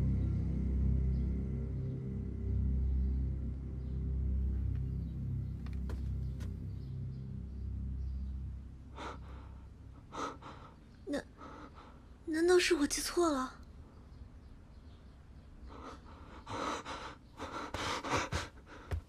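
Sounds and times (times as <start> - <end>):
low dark music with deep tones: 0.0 - 12.3
sharp gasping breaths: 15.6 - 19.0.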